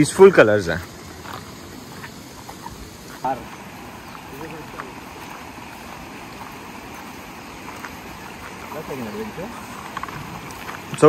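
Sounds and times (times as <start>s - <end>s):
river rushing over stones: 0.0s - 11.0s.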